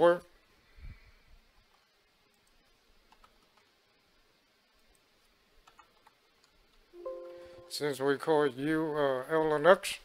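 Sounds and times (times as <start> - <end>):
keyboard typing clicks: 1.7 - 3.7, 4.8 - 7.7.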